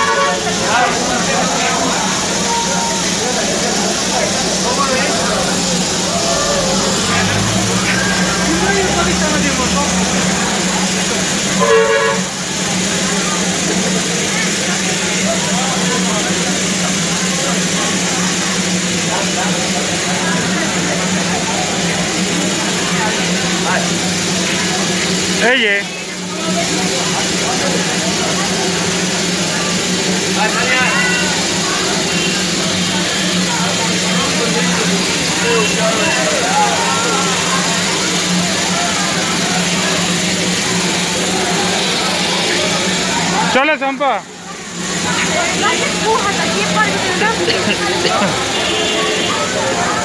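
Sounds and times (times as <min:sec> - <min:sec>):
steam whistle toot: 0:00.0 - 0:01.0, 0:11.5 - 0:12.4, 0:48.4 - 0:49.6
steam locomotive hissing: 0:00.0 - 0:50.0.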